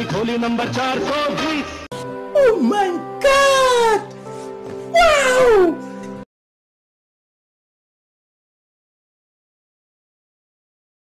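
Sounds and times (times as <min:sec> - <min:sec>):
background music with steady notes: 0:00.0 - 0:06.3.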